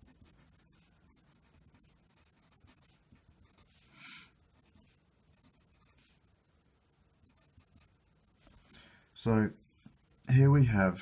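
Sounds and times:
pencil scratching on paper: 0.0 - 3.8, 4.5 - 6.2, 7.2 - 8.0.

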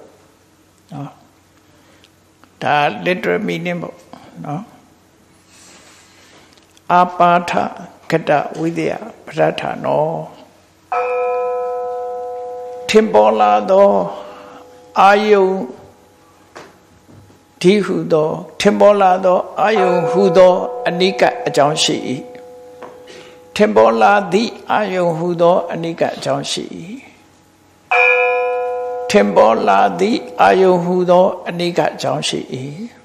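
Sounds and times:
metal bell ringing: 10.9 - 14.7, 19.7 - 24.7, 27.9 - 31.1
person speaking: 12.9 - 15.9, 17.6 - 27.2, 29.1 - 33.0.

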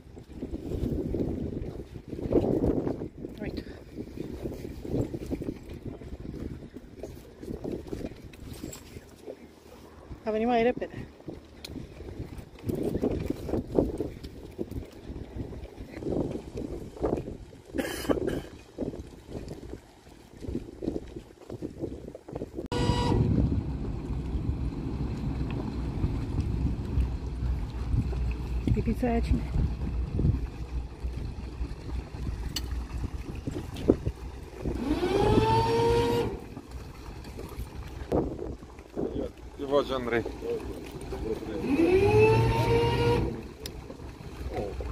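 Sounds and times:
boat engines rumbling: 0.0 - 21.5, 22.2 - 44.9
boat horn blast: 22.7 - 24.2, 34.8 - 36.5, 41.4 - 43.6.

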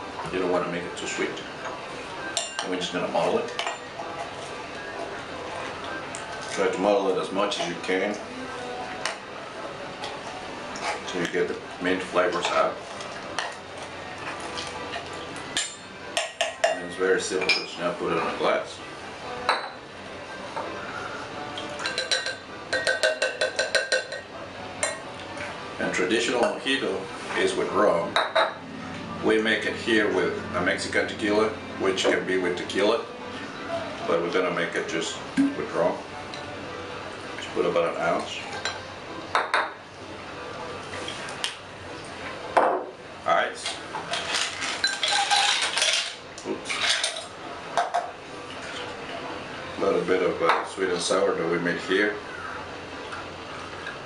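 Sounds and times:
glassware clinking on bar top: 19.5 - 19.8, 21.8 - 25.0, 28.2 - 28.6, 38.6 - 39.8
metal tin and glassware clinking: 44.1 - 47.3.

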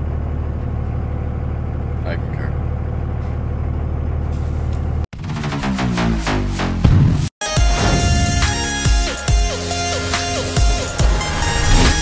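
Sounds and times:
truck engine rumble: 0.0 - 5.5, 6.8 - 12.0
road noise: 9.6 - 12.0.

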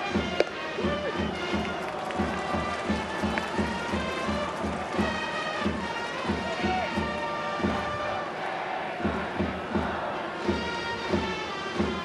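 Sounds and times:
trumpets playing fight song: 0.0 - 9.3, 9.9 - 12.0
steady drumbeat: 0.0 - 12.0.

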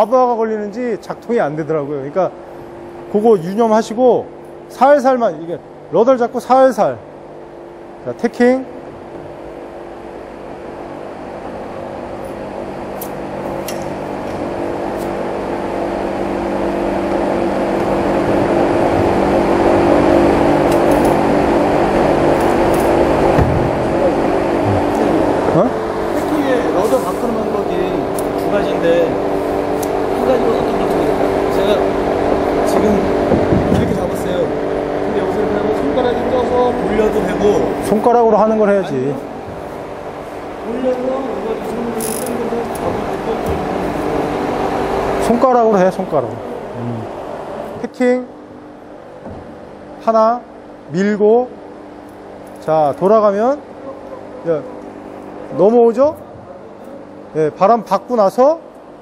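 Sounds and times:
electric motor hum: 0.0 - 59.0.

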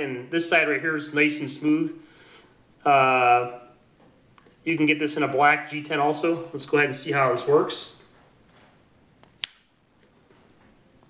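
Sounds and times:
knife blade snapping open: 9.2 - 9.7.

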